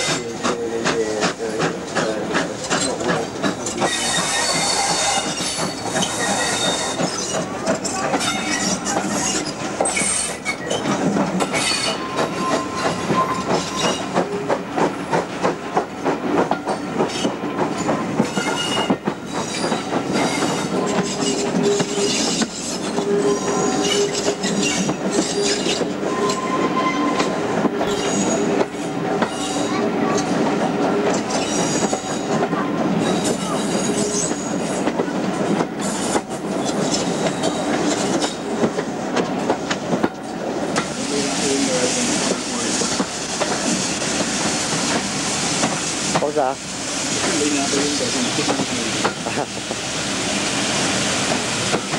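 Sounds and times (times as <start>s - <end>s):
train wheels clattering over rail joints: 0.0s - 26.5s, 27.1s - 46.6s, 47.2s - 49.9s, 51.2s - 51.9s
train wheel squeal: 1.6s - 15.2s, 16.6s - 35.0s, 35.8s - 38.6s.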